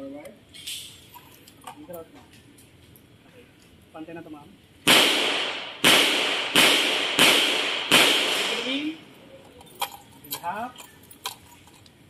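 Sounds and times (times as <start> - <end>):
pistol shots with echo: 4.9 - 9.0.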